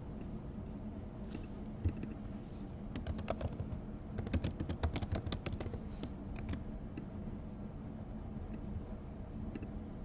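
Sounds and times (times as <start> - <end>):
keyboard typing: 2.9 - 6.7.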